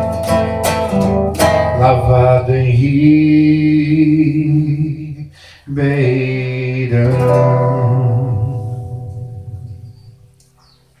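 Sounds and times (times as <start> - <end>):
acoustic guitar chord ringing: 0.0 - 5.1, 6.0 - 10.4
faint bird chirps: 9.1 - 11.0.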